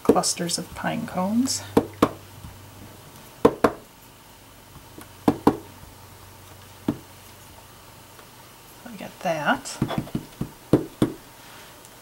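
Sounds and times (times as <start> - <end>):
rubber stamp knocking on table: 9.8 - 11.2.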